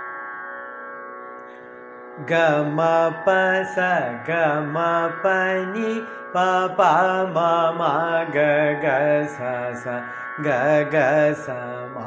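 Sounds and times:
steady drone: 1.4s - 12.0s
man singing syllables: 2.2s - 12.0s.

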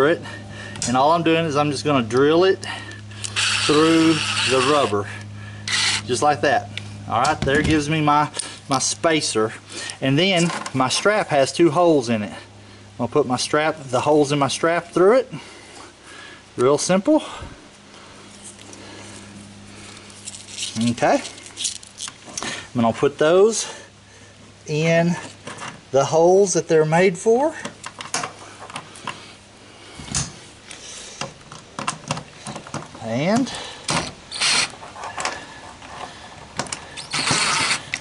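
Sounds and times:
steady low hum: 0.0s - 38.0s
cordless drill driving screws: 3.2s - 5.0s, 5.7s - 6.1s, 33.9s - 34.8s, 36.9s - 38.0s
strap handling: 19.9s - 22.6s.

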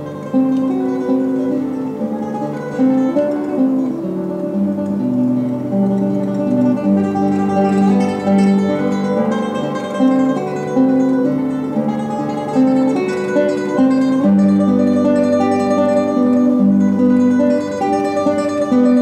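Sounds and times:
classical guitar melody: 0.0s - 19.0s.

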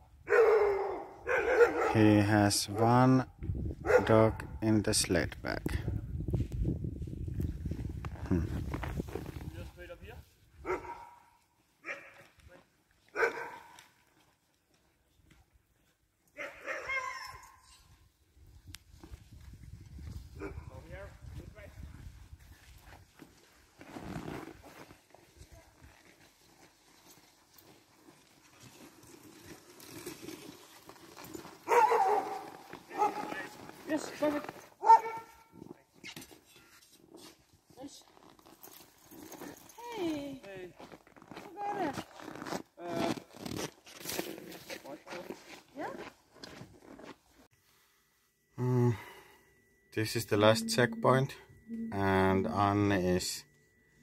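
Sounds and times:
sled dogs barking: 0.3s - 2.0s, 3.8s - 4.2s, 10.6s - 12.3s, 13.1s - 13.9s, 16.4s - 17.8s, 31.6s - 35.5s
people's voices: 50.0s - 53.4s.

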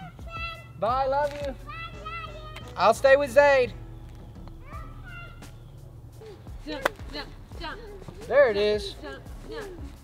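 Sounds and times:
child's high-pitched vocal sound: 4.6s - 5.5s
golf club striking ball: 6.7s - 7.3s.

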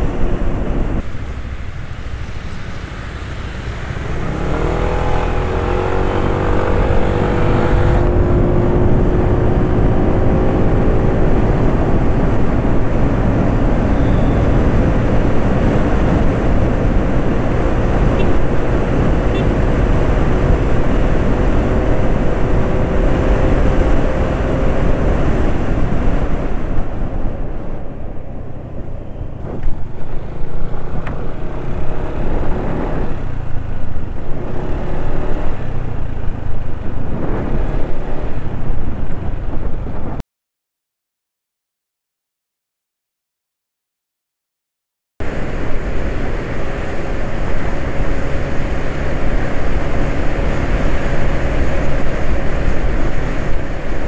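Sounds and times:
road noise: 0.0s - 40.2s, 45.2s - 54.0s
scooter engine whine: 0.0s - 40.2s, 45.2s - 54.0s
wind buffeting microphone: 0.0s - 40.2s.

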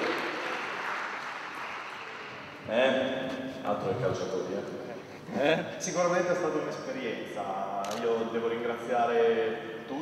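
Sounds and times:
audience applauding: 0.0s - 2.7s.

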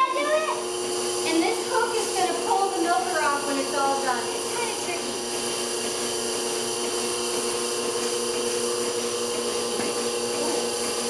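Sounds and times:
milking machine humming: 0.0s - 11.0s.

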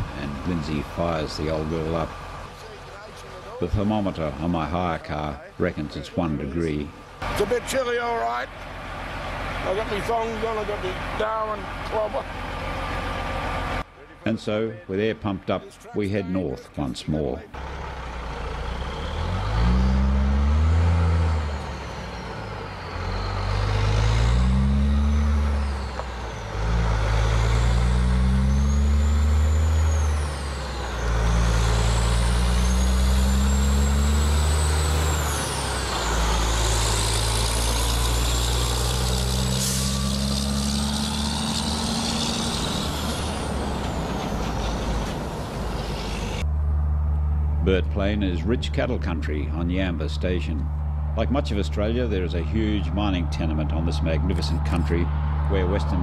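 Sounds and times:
truck engine accelerating: 0.0s - 16.2s, 17.2s - 56.0s
tyres whining: 0.0s - 56.0s.

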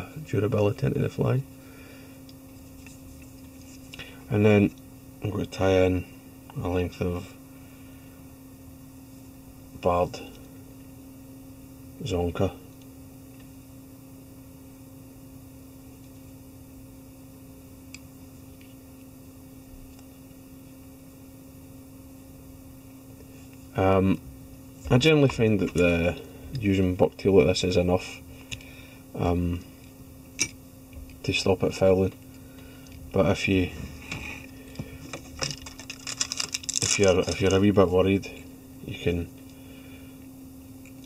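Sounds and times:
low electrical hum: 0.0s - 41.0s
small tools clicking and tapping: 35.1s - 37.6s.

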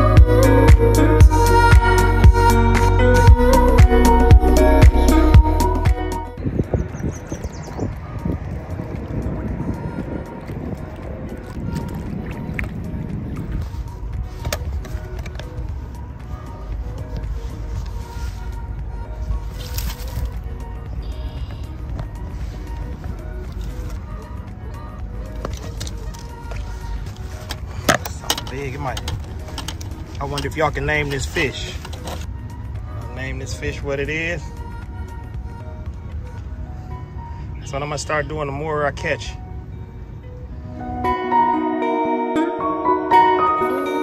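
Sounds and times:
background music: 0.0s - 44.0s
wind buffeting microphone: 6.3s - 33.9s.

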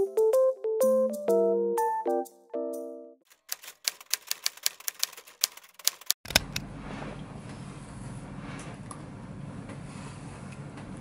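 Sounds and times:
typewriter key clicks: 3.3s - 6.6s.

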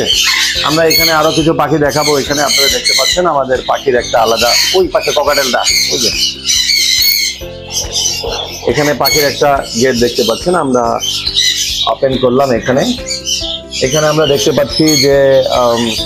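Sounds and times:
background music sustained notes: 0.0s - 16.0s
parrots squawking and chattering: 0.0s - 16.0s.

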